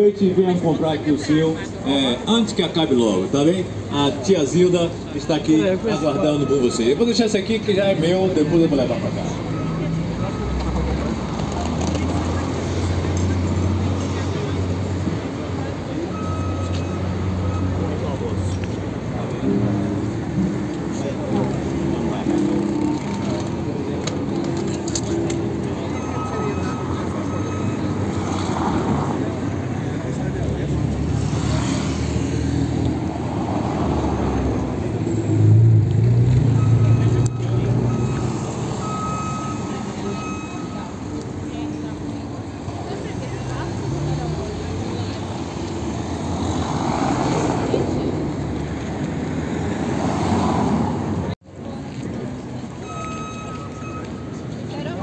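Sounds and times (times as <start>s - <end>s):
passers-by talking: 0.0s - 55.0s
traffic running: 0.0s - 55.0s.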